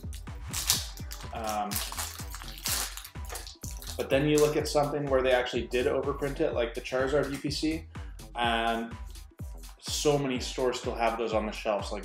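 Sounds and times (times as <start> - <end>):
foil wrapper crinkling: 0.0 - 4.5.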